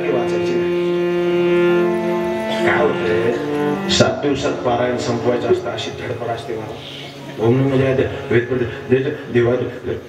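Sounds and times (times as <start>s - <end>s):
harmonium chord: 0.0s - 10.0s.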